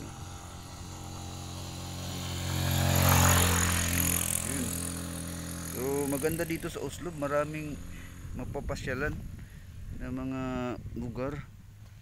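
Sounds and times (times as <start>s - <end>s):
vehicle engine passing: 0.0s - 9.3s.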